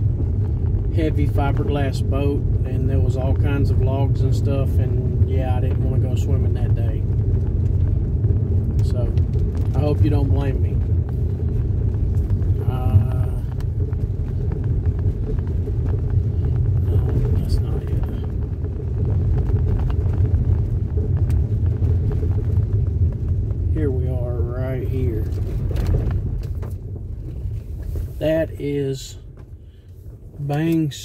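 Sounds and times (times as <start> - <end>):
faint ticking from road surface: 0.0 - 31.0
road rumble inside vehicle: 0.0 - 31.0.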